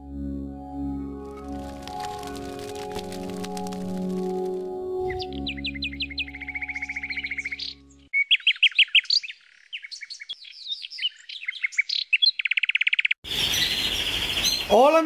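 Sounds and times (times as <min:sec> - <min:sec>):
held musical chord: 0:00.0 - 0:08.1
canary singing trills: 0:05.1 - 0:14.8.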